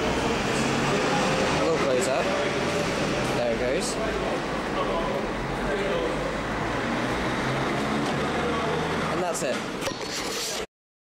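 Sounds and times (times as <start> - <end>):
distant voices: 0.0 - 10.2.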